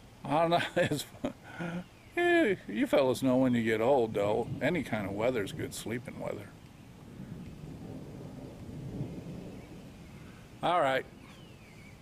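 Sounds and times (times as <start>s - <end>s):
low rumble of thunder: 2.6s - 12.0s.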